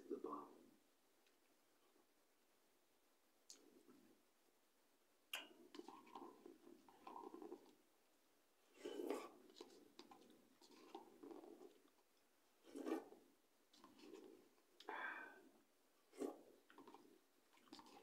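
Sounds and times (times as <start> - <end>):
chewing noodles: 5.7 - 7.8, 8.7 - 14.9, 16.1 - 18.0
noodle slurping: 5.7 - 7.8, 8.7 - 14.9, 16.0 - 18.0.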